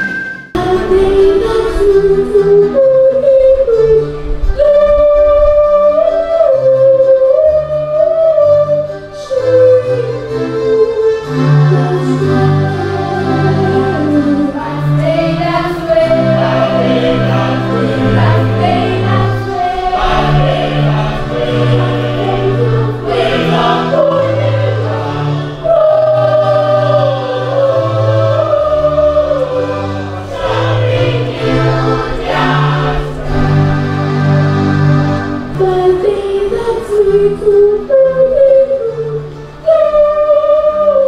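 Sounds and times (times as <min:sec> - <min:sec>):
choir singing gospel song: 0:12.0 - 0:37.5.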